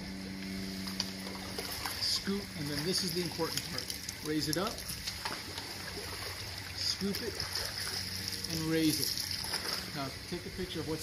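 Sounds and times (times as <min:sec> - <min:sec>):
steady low hum: 0:00.0 - 0:11.0
water swishing: 0:00.6 - 0:10.3.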